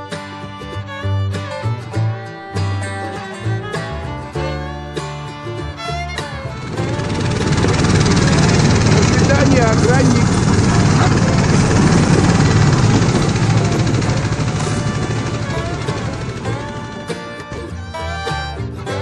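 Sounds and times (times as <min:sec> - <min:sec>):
small engine droning: 0:00.0 - 0:19.0.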